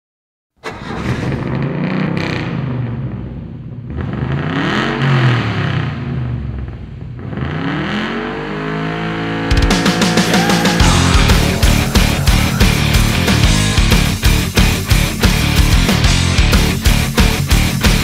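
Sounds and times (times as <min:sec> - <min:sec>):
engine revving: 0:00.6 - 0:06.3, 0:07.2 - 0:16.8
heavy rock music: 0:09.5 - 0:18.0
low rumble: 0:10.0 - 0:14.8.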